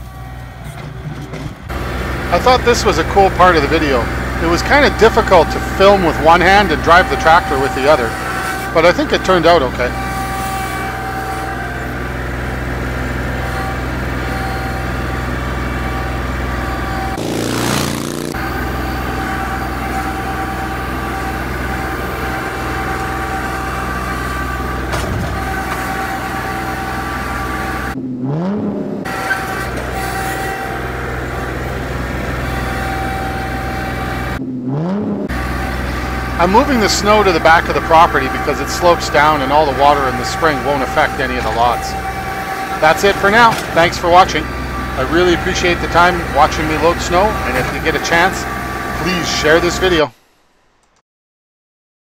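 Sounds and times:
tractor diesel engine running: 0.0s - 50.2s
short rushing noise: 17.2s - 18.4s.

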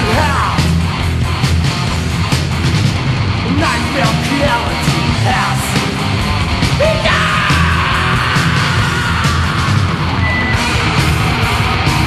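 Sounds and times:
thrash metal music: 0.0s - 12.0s
yelled vocal: 3.4s - 11.9s.

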